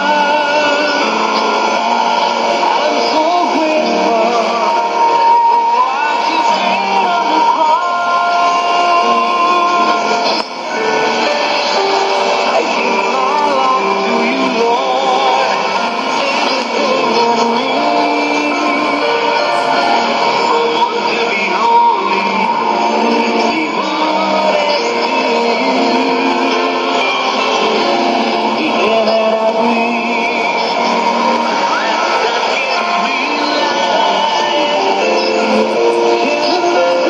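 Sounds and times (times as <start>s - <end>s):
static hiss: 0.0s - 37.0s
thin radio music through speaker: 0.0s - 37.0s.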